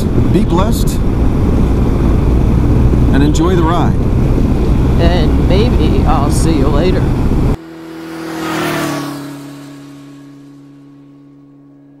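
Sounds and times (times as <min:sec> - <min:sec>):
held low chord: 0:06.8 - 0:12.0.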